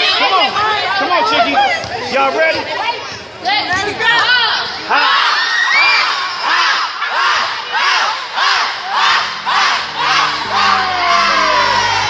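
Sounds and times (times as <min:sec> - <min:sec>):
girls shouting a chant: 0:06.1 - 0:12.0
music: 0:09.6 - 0:12.0.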